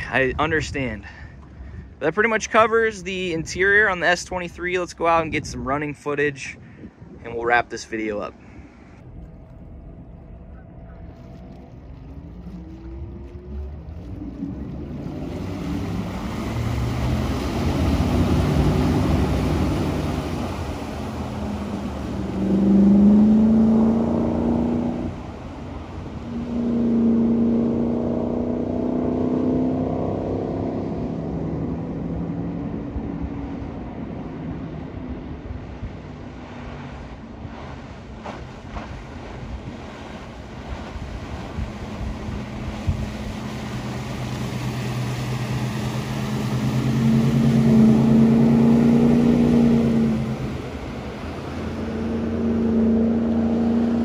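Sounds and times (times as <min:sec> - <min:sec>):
water rushing off hull: 0:00.0 - 0:54.0
boat engine running at speed: 0:08.0 - 0:54.0.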